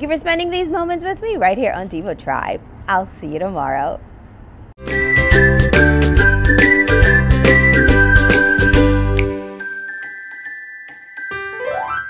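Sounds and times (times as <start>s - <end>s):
upbeat theme jingle: 4.8s - 12.0s.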